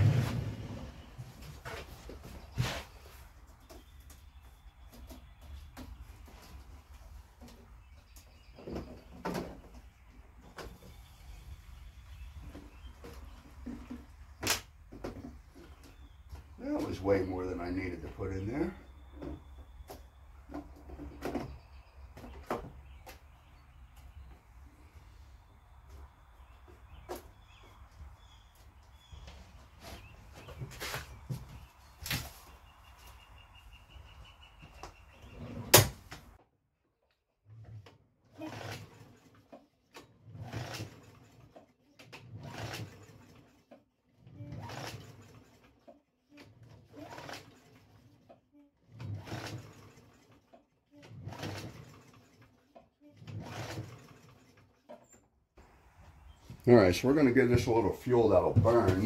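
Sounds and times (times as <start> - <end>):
recoil starter rope pulls: 37.5 - 55.1
engine cranking without firing: 38.4 - 55.1.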